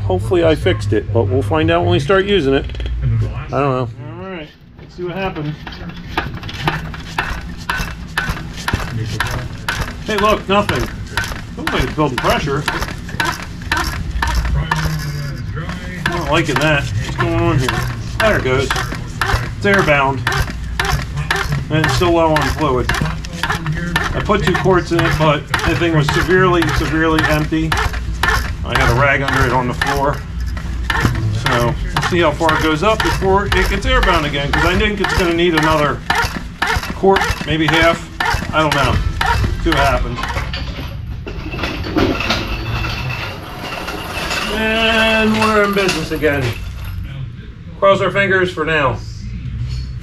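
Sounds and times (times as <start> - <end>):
hydraulic jack pump clacking: 5.2 - 43.1.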